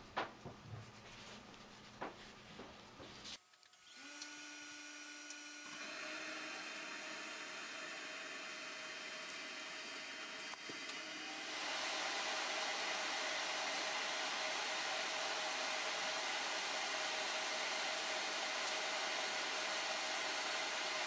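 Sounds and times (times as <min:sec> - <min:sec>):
fan whirring hiss: 0:06.1 - 0:21.0.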